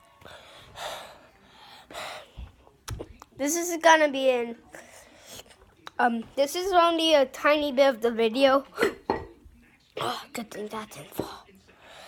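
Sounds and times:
boy gasping breaths: 0.0 - 2.5.

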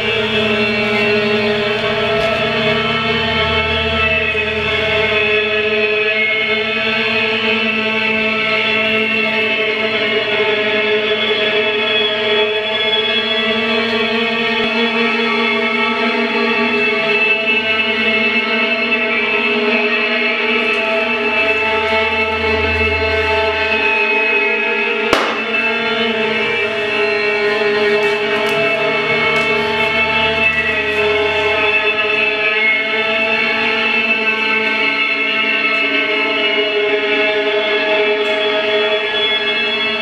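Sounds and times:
violin bowing long note: 0.0 - 40.0.

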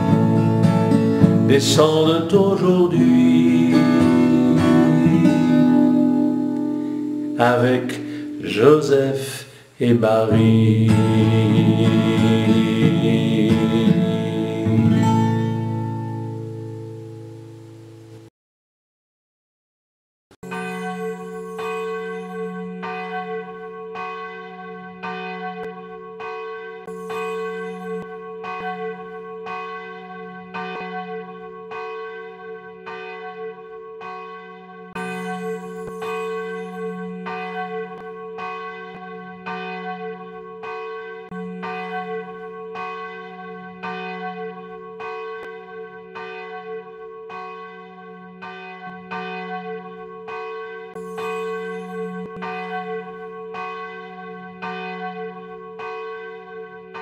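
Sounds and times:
church bells ringing: 0.0 - 17.8, 20.4 - 57.0.

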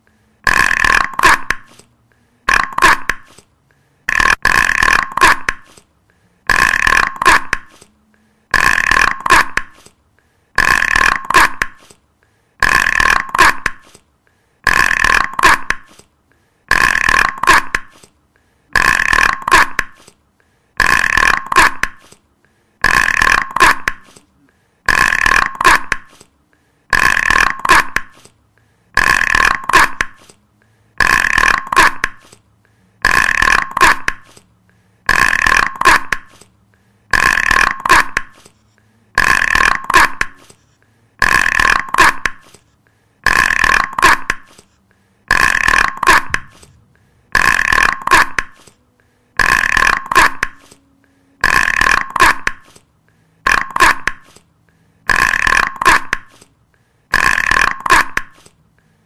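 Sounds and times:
loud rough sound: 2.4 - 3.4, 4.0 - 5.8, 6.4 - 7.8, 8.5 - 9.9, 10.6 - 11.9, 12.6 - 14.0, 16.7 - 18.0, 20.8 - 22.1, 22.8 - 26.2, 26.9 - 28.2, 28.9 - 30.3, 30.9 - 42.6, 43.2 - 52.8, 55.0 - 56.5, 57.1 - 58.6.

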